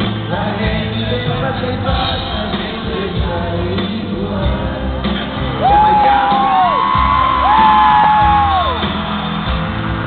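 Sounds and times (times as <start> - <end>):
live bachata band music: 0.0 - 10.0.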